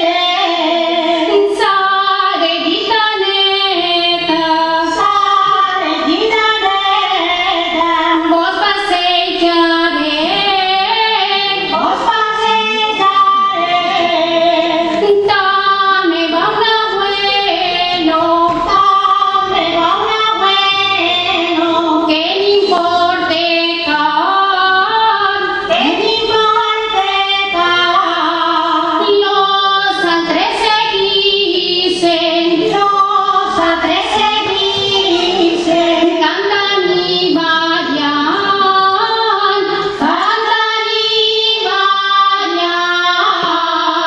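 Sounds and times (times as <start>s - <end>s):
women singing together: 0.0s - 44.0s.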